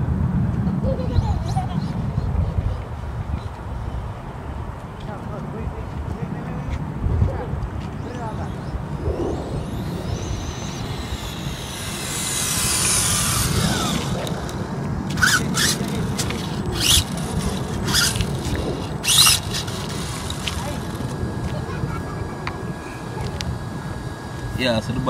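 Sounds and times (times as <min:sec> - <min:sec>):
toy car motor whine: 0:08.1 - 0:24.8.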